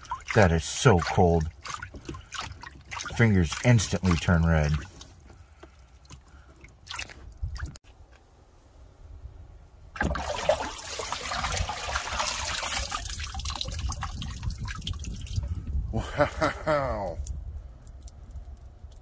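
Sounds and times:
water rushing out draining: 0.0 - 5.0, 10.0 - 15.6
hand moving in water: 0.0 - 7.8, 10.0 - 15.6
small splashes: 0.0 - 7.8, 9.9 - 15.6.

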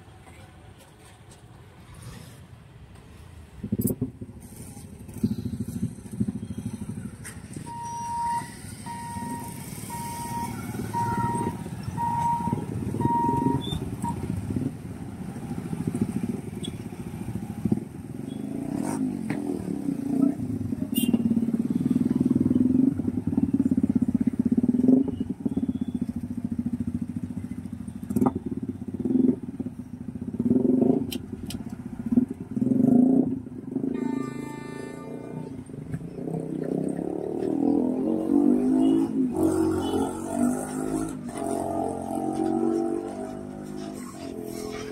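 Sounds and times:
vehicle engines passing: 0.0 - 44.9
short beep: 7.6 - 14.2
vehicle horn: 20.9 - 21.3, 33.9 - 35.6, 38.7 - 42.4.

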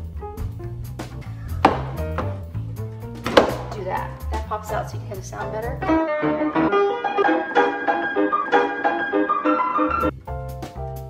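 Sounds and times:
walking bass line: 0.0 - 6.2
drum beat: 1.6 - 2.4.

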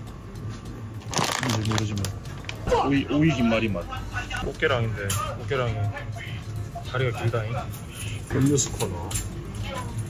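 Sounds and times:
plastic bag crinkling: 1.0 - 2.7.

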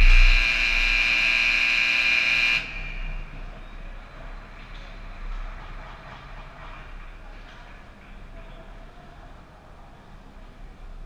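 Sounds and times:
scoreboard horn buzzing: 0.0 - 3.4.

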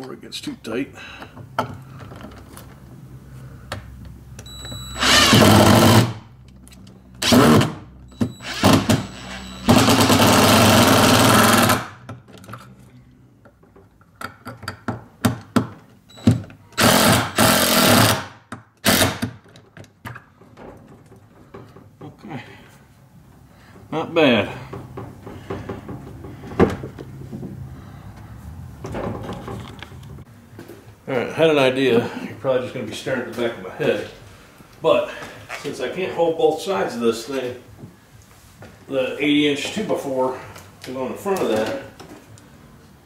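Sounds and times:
cordless drill driving screws: 5.0 - 6.1, 8.3 - 11.8, 16.8 - 18.2, 18.8 - 19.3.

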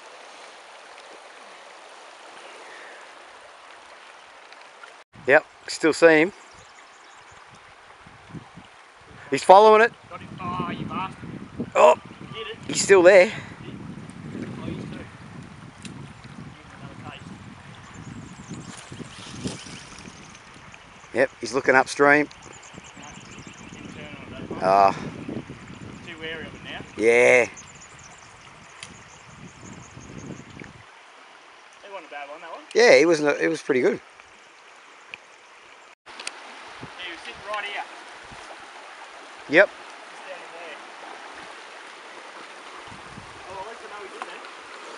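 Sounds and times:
shallow creek flowing: 0.0 - 44.9
wind rumbling on microphone: 6.5 - 30.9, 36.4 - 39.3, 41.0 - 44.9
small click: 36.2 - 36.4.

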